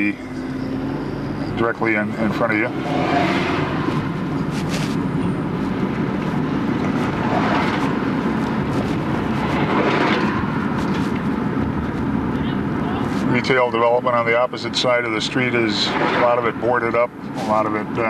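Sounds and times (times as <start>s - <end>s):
car engine and tyre hum: 0.0s - 18.0s
passing traffic: 0.0s - 18.0s.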